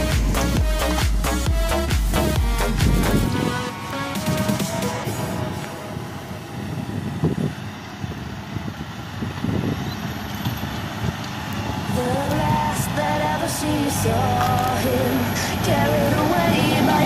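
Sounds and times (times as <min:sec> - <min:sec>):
song with melody: 0:00.0 - 0:06.6
tractor running under load: 0:00.0 - 0:17.0.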